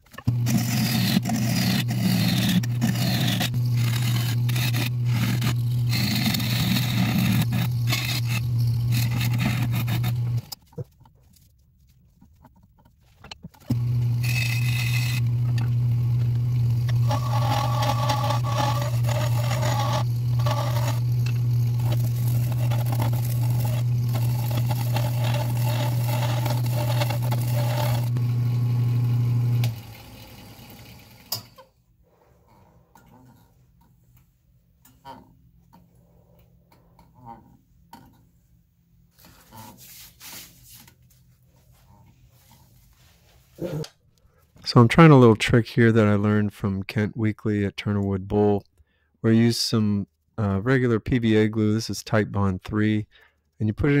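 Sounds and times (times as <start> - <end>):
wood lathe humming: 0.2 - 10.6, 13.6 - 31.5
gouge scraping wood: 0.3 - 10.6, 13.7 - 28.2.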